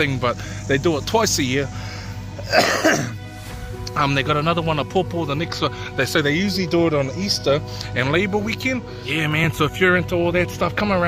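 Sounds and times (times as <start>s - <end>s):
faint background music: 0.0s - 11.0s
man coughing: 2.4s - 3.2s.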